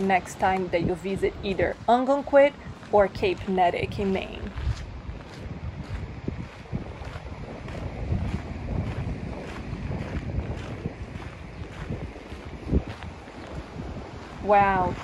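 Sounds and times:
footsteps on gravel: 0:00.0 - 0:15.0
wind buffeting microphone: 0:00.0 - 0:15.0.

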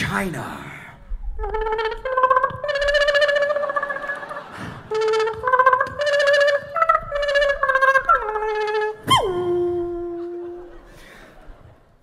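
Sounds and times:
beatboxer imitating plucked strings: 0:01.3 - 0:10.9.

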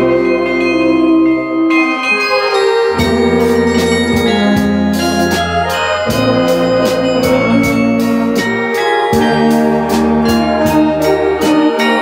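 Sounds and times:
carillon bells ringing: 0:00.0 - 0:12.0
musical ensemble playing: 0:00.0 - 0:12.0.

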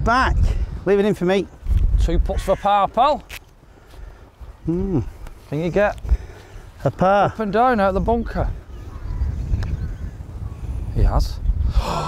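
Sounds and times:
wind rumble on microphone: 0:00.0 - 0:03.2, 0:04.4 - 0:12.0.

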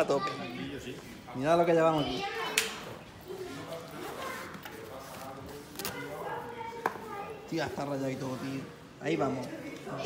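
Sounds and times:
quiet voices talking: 0:00.0 - 0:10.0.

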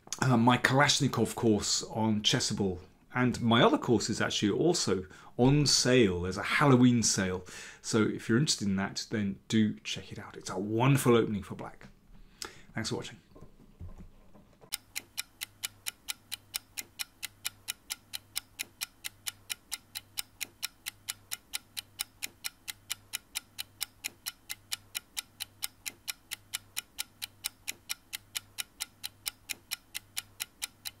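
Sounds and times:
rapid even ticking: 0:14.7 - 0:31.0.

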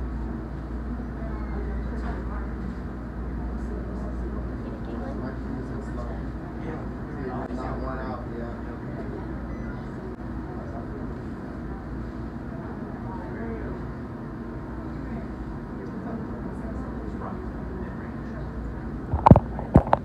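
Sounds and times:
restaurant background hum: 0:00.0 - 0:20.0
murmured voices: 0:00.7 - 0:20.0.

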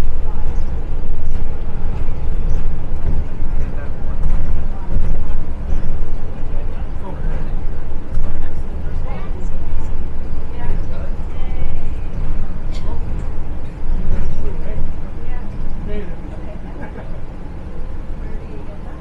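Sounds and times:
bus engine low rumble: 0:00.0 - 0:19.0
passenger chatter: 0:00.0 - 0:19.0.

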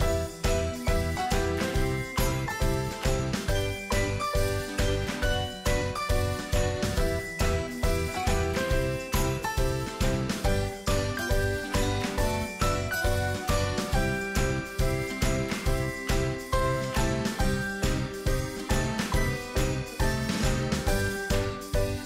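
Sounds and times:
bright melody over steady beat: 0:00.0 - 0:22.0.

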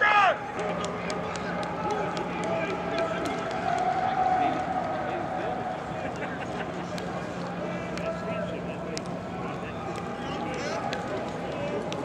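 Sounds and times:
players calling and talking: 0:00.0 - 0:12.0
sharp clicks and claps: 0:00.5 - 0:05.0, 0:06.1 - 0:12.0.

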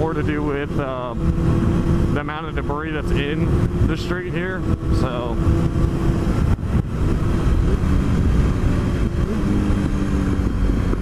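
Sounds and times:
motorcycle engine running: 0:00.0 - 0:11.0
wind rumble on microphone: 0:00.0 - 0:11.0.

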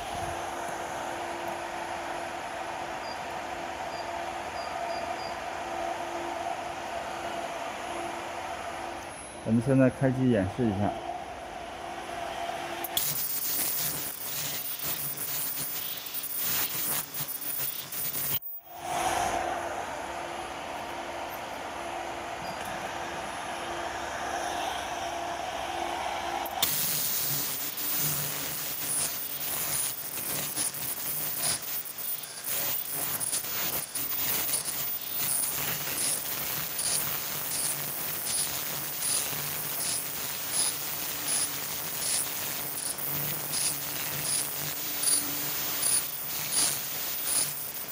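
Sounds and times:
steady hum: 0:00.0 - 0:47.9.

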